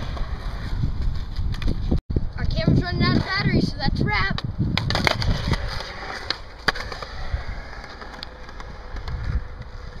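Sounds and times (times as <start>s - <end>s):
skateboard wheels rolling on concrete: 0.0s - 10.0s.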